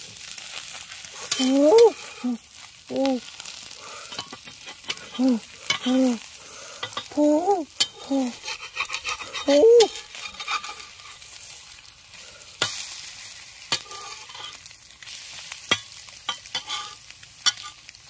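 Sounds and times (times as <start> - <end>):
eggs sizzling on hot stone: 0.0 - 18.0
person humming: 1.2 - 3.3, 5.0 - 6.3, 7.0 - 8.4, 9.3 - 10.0
metal blade scraping stone: 7.8 - 11.2, 16.5 - 17.8.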